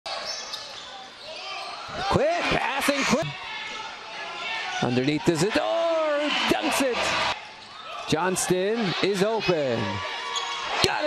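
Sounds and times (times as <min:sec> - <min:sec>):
sneakers squeaking on hardwood: 0:00.1 - 0:02.0, 0:10.2 - 0:10.8.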